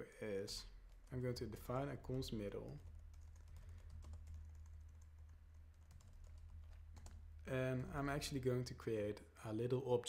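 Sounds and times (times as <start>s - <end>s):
typing on keyboard: 2.6s - 7.2s.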